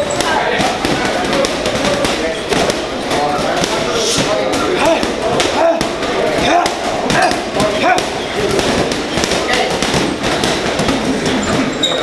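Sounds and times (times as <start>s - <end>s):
voices talking: 0.0s - 12.0s
gloved punches hitting heavy bags: 3.6s - 11.7s.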